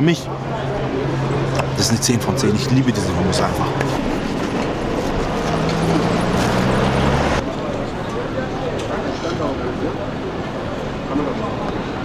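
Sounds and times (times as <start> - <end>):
people talking in background: 0.0 - 12.0
vehicle engine running: 0.3 - 8.0.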